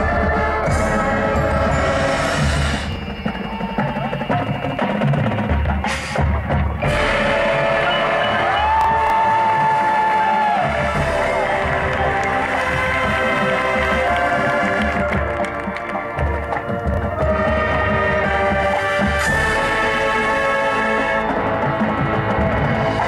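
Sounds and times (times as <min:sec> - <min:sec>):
brass and winds holding chords: 0:00.0 - 0:03.6, 0:06.8 - 0:23.0
drums: 0:00.0 - 0:23.0
mallet percussion: 0:00.0 - 0:23.0.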